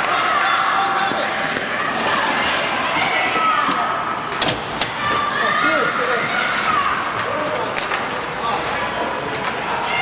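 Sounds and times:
skates and wind rushing: 0.0 - 4.1.

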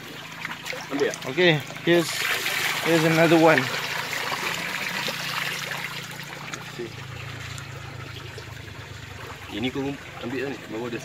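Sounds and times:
water trickling and dripping from net: 0.0 - 11.0.

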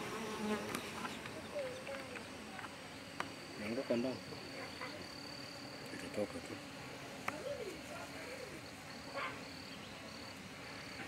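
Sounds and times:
bee flying past: 0.0 - 11.0
honeybees buzzing: 0.0 - 11.0.

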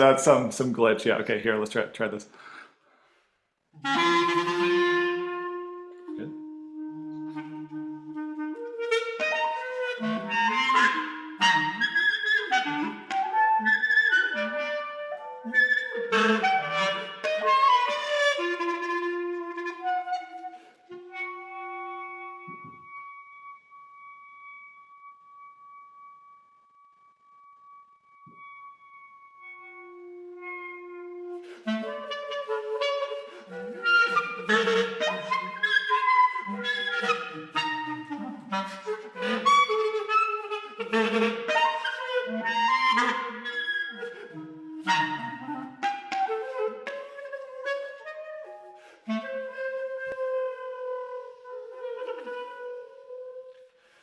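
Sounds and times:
clarinet sustained note: 3.8 - 53.6.

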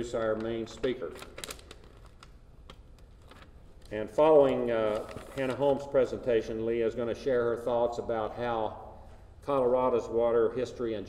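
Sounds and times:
paper rustling and clicks: 0.1 - 5.8.

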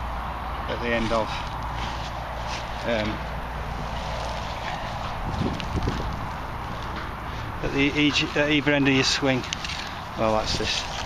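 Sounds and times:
wind rumble on microphone: 3.8 - 7.7.

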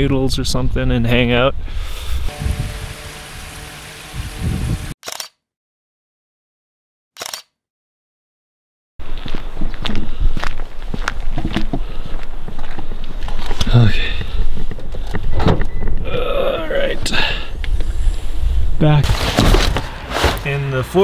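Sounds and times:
camera handling noise: 5.0 - 5.4, 7.2 - 7.5
footsteps on gravel: 9.0 - 13.6.

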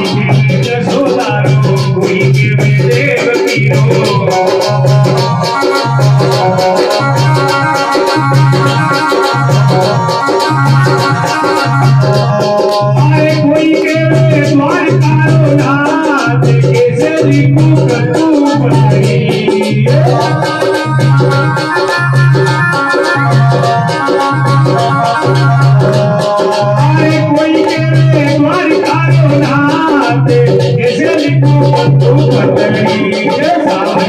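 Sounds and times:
hand-drum percussion: 0.0 - 34.0
electronic keyboard organ tones: 3.7 - 14.4, 19.0 - 29.2.

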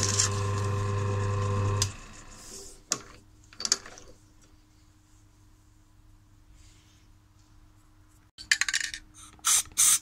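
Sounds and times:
spray can hissing: 9.4 - 10.0.

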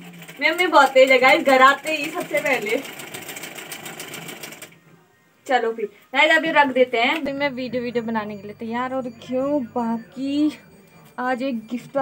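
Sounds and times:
sewing machine running: 0.0 - 4.8.

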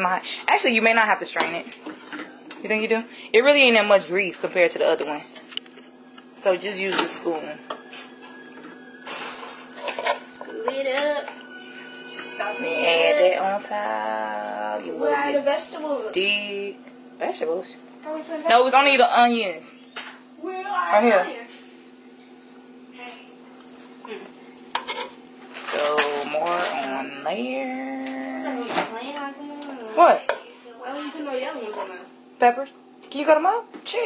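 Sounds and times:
metal spoon scraping a pan: 9.1 - 12.9, 24.7 - 27.0.

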